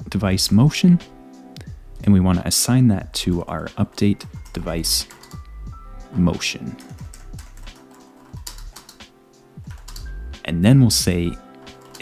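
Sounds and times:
background music: 0.0s - 12.0s
typing on computer keyboard: 4.3s - 5.4s, 6.8s - 10.1s, 11.6s - 12.0s.

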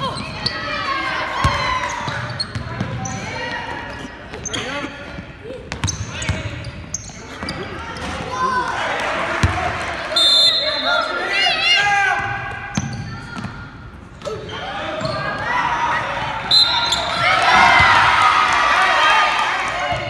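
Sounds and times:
sneaker squeaks: 0.0s - 8.2s, 12.6s - 15.5s, 16.5s - 17.8s
spectators shouting: 14.5s - 20.0s.

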